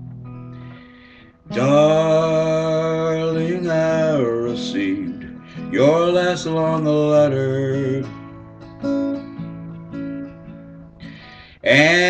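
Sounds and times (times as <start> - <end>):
acoustic guitar strumming: 0.0 - 12.0
person singing: 1.5 - 8.2, 11.5 - 12.0.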